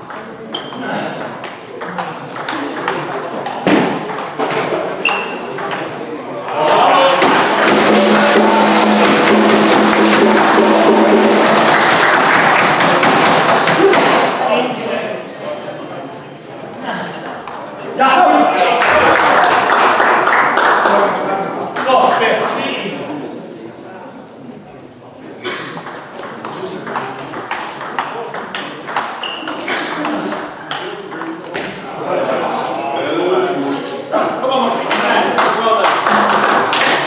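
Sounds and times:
spectators shouting and cheering: 6.5 - 14.3.

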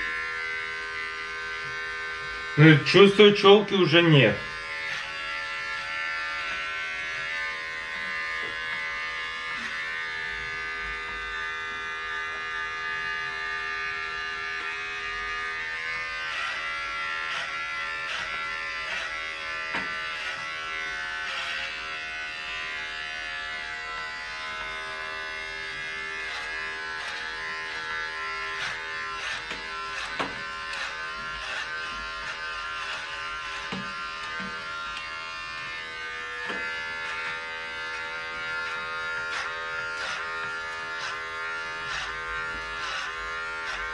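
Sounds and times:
electric hair clipper buzzing: 0.0 - 43.9.

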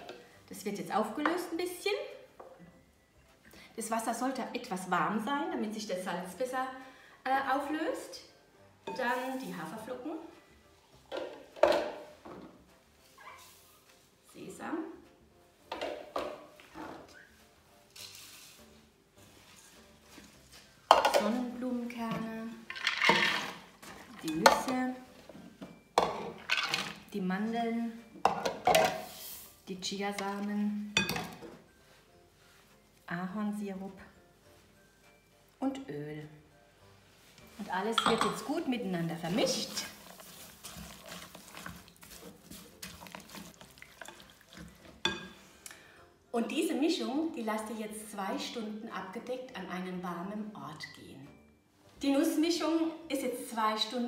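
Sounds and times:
faint background music: 0.0 - 54.0
spatula scraping in glass bowl: 39.2 - 45.4.

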